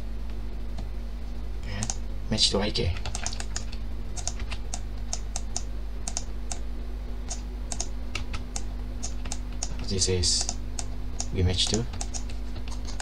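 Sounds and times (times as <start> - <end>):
low electrical hum: 0.0 - 13.0
keyboard and mouse clicks: 1.8 - 2.0, 2.9 - 6.6, 7.3 - 13.0.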